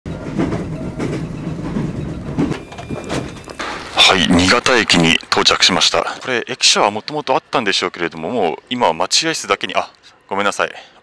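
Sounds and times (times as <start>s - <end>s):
train rumbling: 0.1s - 8.8s
wheels knocking over rail joints: 0.2s - 4.6s.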